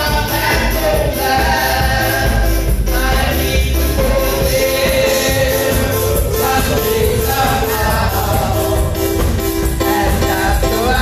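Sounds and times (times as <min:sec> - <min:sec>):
drum kit with cymbals: 0:00.0 - 0:11.0
low bass line: 0:00.0 - 0:11.0
voices singing gospel: 0:00.0 - 0:11.0.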